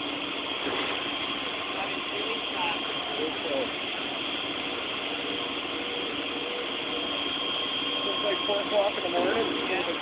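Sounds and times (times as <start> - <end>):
fire hose streams rushing: 0.0 - 10.0.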